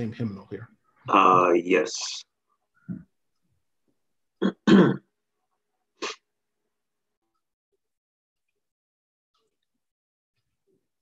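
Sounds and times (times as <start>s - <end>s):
man clearing his throat: 4.4s - 5.1s.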